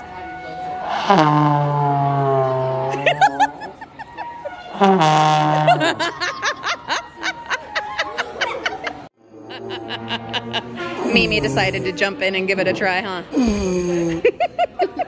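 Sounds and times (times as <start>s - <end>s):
trombone low sliding notes: 0.6s - 3.6s, 4.8s - 6.0s
people laughing: 2.8s - 11.7s, 13.9s - 15.0s.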